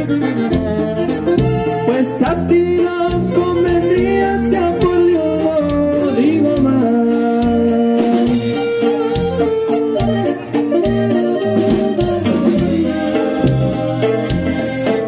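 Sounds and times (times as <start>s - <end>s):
accordion notes: 0.0s - 15.0s
drum kit beat: 0.0s - 15.0s
guitars: 0.0s - 15.0s
saxophone notes: 0.0s - 15.0s.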